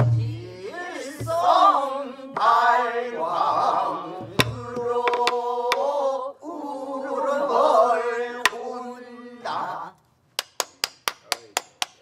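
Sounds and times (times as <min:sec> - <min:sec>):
hands clapping rhythmically: 0:10.4 - 0:12.0.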